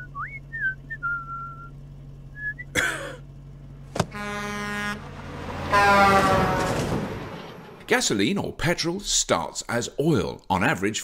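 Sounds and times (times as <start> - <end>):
truck rushing past: 0.0 - 8.2
truck horn blaring: 4.0 - 7.8.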